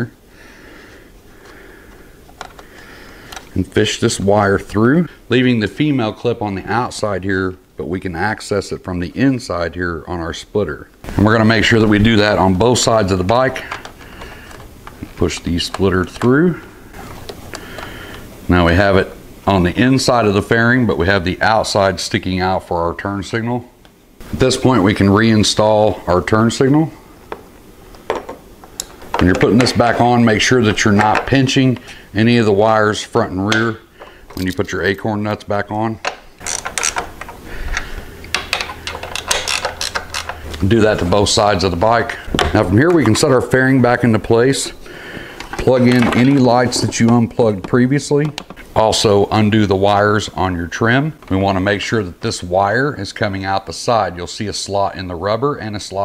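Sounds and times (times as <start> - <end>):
low room hum: 0.0 - 56.0
light rustling of wiring: 0.9 - 4.8, 11.0 - 18.9, 25.6 - 52.6.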